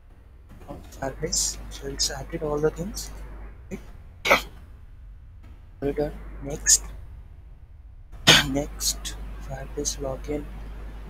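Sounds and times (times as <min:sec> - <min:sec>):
man coughing: 0:04.3 - 0:04.5, 0:08.3 - 0:08.7.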